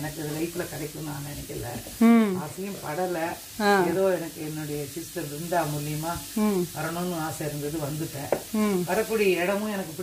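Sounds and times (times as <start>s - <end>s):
faint sizzle in a pan: 0.0s - 10.0s
woman talking: 2.0s - 2.5s, 3.6s - 4.0s, 6.3s - 6.9s, 8.5s - 9.0s.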